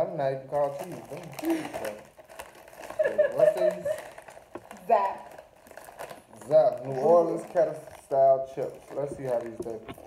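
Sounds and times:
snack bag crinkling: 0:00.5 - 0:10.0
woman laughing: 0:02.9 - 0:04.1.

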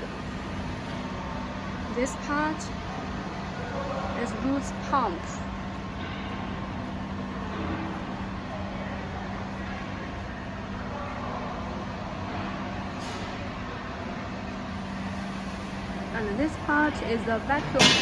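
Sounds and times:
industrial machinery hum: 0:00.0 - 0:18.0.

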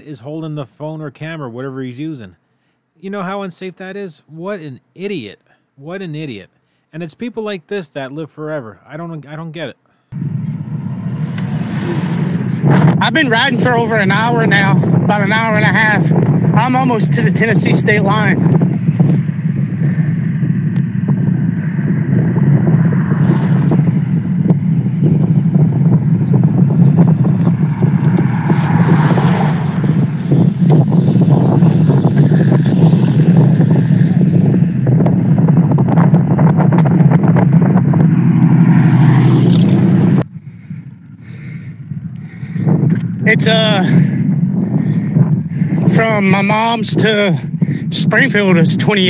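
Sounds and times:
wind buffeting microphone: 0:10.1 - 0:49.0.

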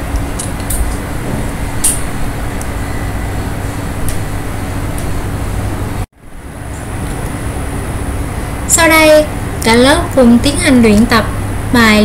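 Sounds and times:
background noise with low hum: 0:00.0 - 0:12.0.

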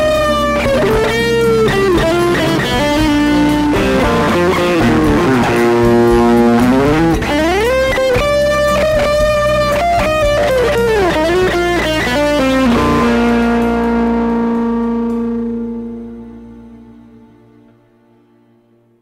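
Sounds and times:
electric guitar lead line: 0:00.0 - 0:19.0.

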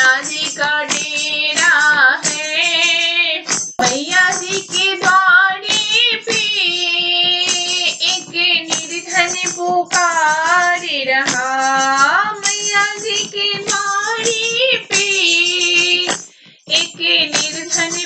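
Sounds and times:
steady percussion beat: 0:03.5 - 0:18.0.

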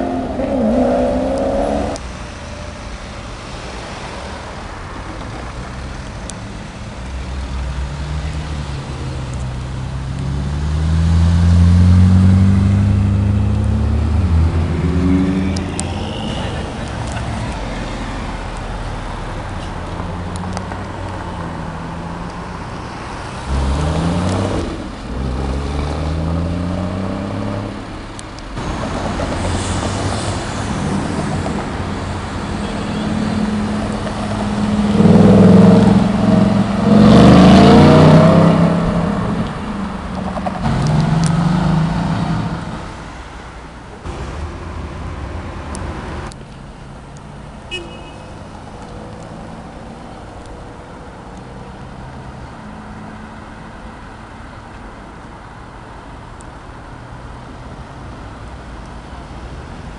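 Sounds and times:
cars accelerating through gears: 0:00.0 - 0:02.0, 0:10.0 - 0:17.5, 0:23.4 - 0:27.8, 0:33.0 - 0:42.9
sports car engine revving: 0:00.0 - 0:02.0, 0:33.4 - 0:42.9
quieter traffic: 0:00.0 - 0:59.9.

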